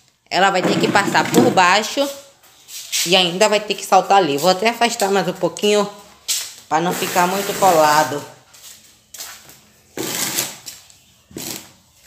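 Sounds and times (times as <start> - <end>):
chair scraping on concrete: 0.4 - 3.2, 6.8 - 8.4, 9.9 - 11.8.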